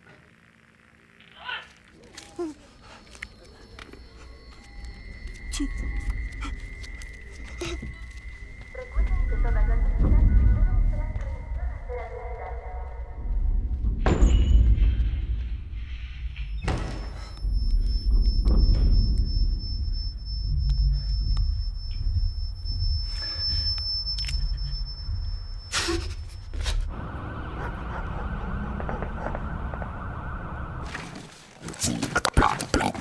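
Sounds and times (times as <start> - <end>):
high-pitched whine: 3.1 - 11.7, 14.0 - 31.2
deep low drone: 13.0 - 30.9.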